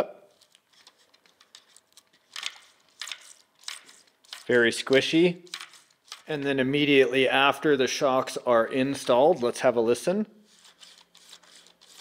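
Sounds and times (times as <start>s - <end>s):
plastic handling noise: 0.3s - 6.3s
rustling scrape: 10.4s - 12.0s.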